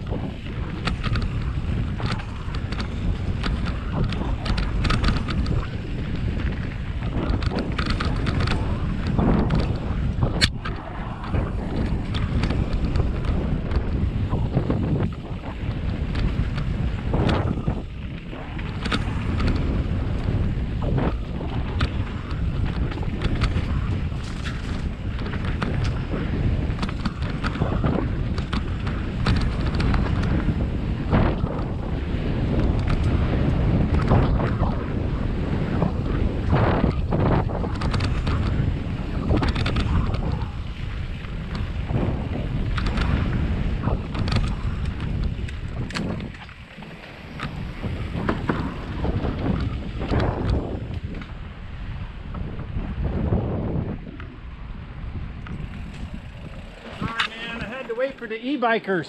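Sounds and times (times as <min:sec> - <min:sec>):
tyres rolling over dirt: 0:00.0 - 0:51.4, 0:55.2 - 0:58.9
bike knocking and rattling: 0:00.0 - 0:58.9
wind buffeting microphone: 0:00.0 - 0:59.0.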